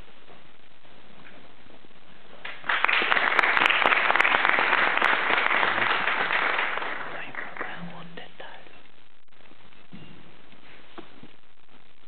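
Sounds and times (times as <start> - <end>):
audience applauding: 2.4 - 7.8.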